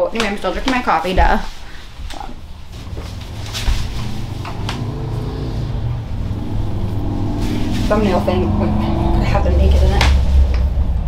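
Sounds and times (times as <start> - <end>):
low motor rumble: 2.4 - 11.0.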